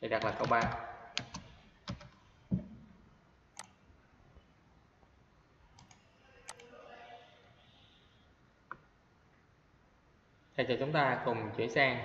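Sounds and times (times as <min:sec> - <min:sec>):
computer mouse clicks: 0:00.2 - 0:02.2, 0:03.6 - 0:03.8, 0:05.7 - 0:06.7.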